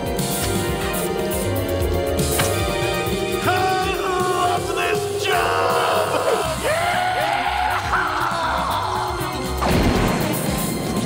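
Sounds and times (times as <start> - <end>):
loud crash: 9.6 - 11.0.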